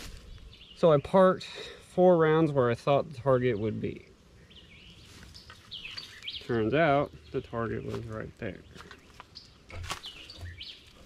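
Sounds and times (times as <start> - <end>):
faint bird chirps: 3.4 - 11.0.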